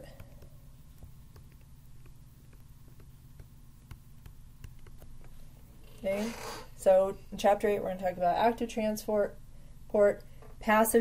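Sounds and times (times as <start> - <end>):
stylus tapping on tablet screen: 0.0 - 5.6
low electrical hum: 0.0 - 11.0.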